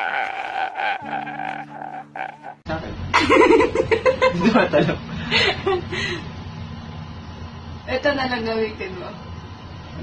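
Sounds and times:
man's croaky crying wail: 0.0 - 2.6.

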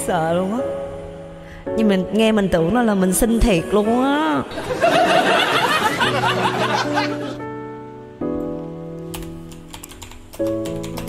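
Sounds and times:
instrumental music with sustained chords: 0.0 - 11.0
typing on keyboard: 9.1 - 11.0.

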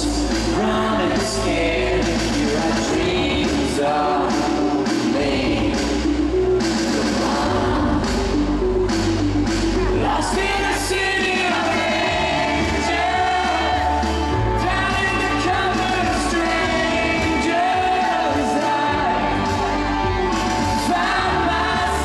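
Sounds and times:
bass line: 0.0 - 22.0
live rock band playing: 0.2 - 22.0.

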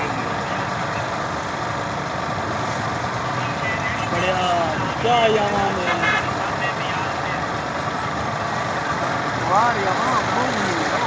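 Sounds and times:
vehicle engines running: 0.0 - 11.0.

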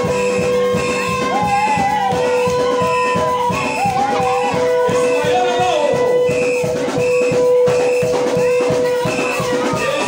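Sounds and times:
drum kit beat: 0.0 - 10.0
short high notes: 0.0 - 10.0.

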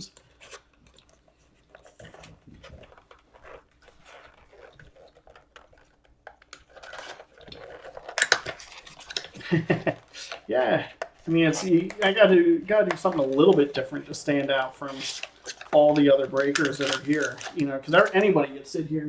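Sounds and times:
card pack tearing and crinkling: 1.8 - 18.4.

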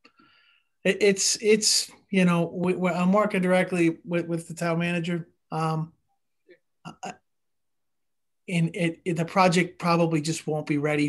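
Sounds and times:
man speaking: 0.8 - 6.0, 6.8 - 7.3, 8.4 - 11.0.

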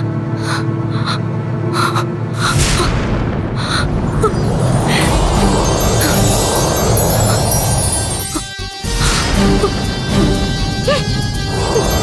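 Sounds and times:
low drone: 0.0 - 12.0
suspense background music: 0.0 - 12.0
airy breath-like pulses: 3.6 - 10.3.

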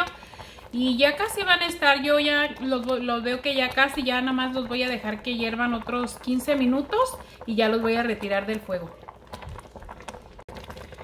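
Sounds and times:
syrup boiling in a pot: 0.0 - 11.0.

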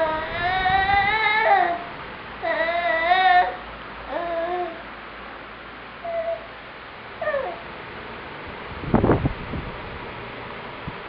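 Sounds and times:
toddler vocal squeaks and cries: 0.0 - 4.8.

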